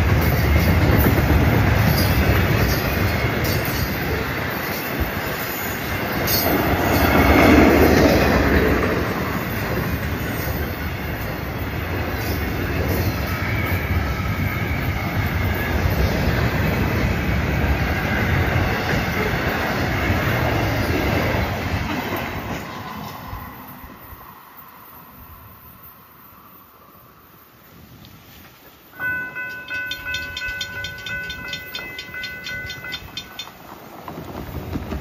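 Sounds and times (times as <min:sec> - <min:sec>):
freight train wheels clattering: 0:00.0 - 0:23.4, 0:29.0 - 0:35.0.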